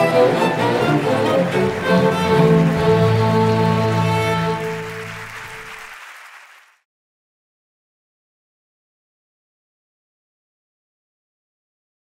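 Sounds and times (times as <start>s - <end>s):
orchestral string music: 0.0s - 5.9s.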